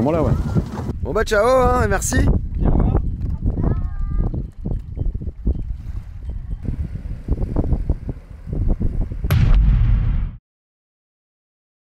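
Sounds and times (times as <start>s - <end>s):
wind buffeting microphone: 0.0s - 9.4s.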